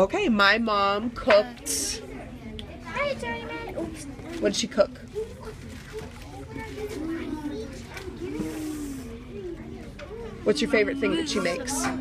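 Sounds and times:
soft background voices: 1.0s - 12.0s.

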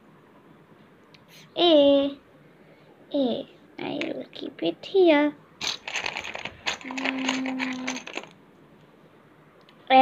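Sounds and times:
plastic letter tiles clicking: 5.6s - 8.3s.

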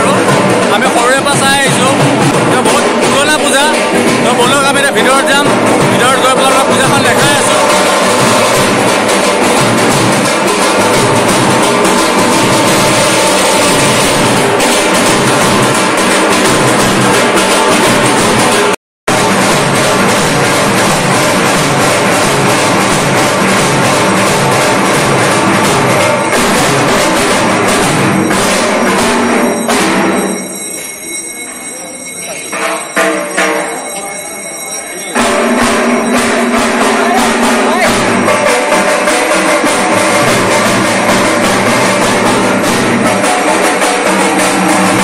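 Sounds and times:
barrel drums beating fast: 0.0s - 31.8s, 32.5s - 45.0s.

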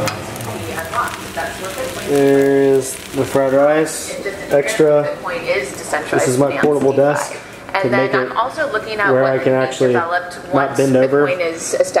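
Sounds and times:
rice sizzling in a frying pan: 0.0s - 8.1s.

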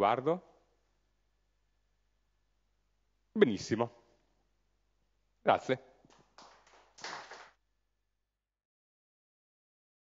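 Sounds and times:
faint hand claps: 6.1s - 7.6s.

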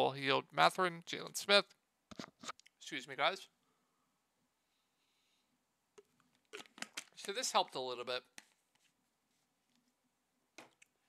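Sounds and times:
man talking: 0.0s - 1.6s, 2.8s - 3.5s, 7.2s - 8.3s.

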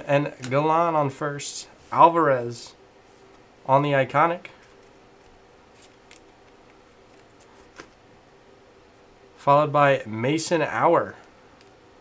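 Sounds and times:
cards flipped through by hand: 4.6s - 8.0s.

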